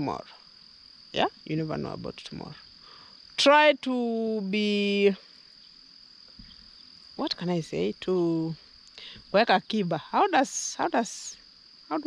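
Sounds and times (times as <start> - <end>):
high-pitched insect song: 0.0 - 12.0.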